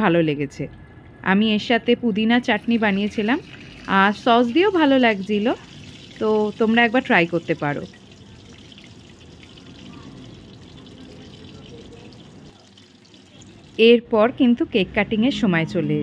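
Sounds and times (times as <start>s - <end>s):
food deep-frying in hot oil: 2.2s - 14.1s.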